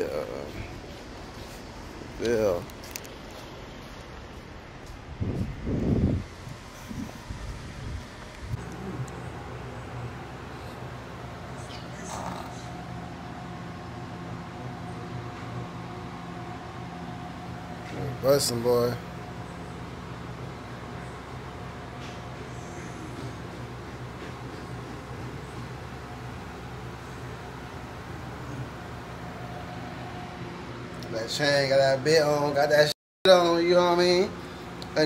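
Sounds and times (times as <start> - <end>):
faint constant whine: 0.0 - 35.0
mechanical room hum: 0.0 - 35.0.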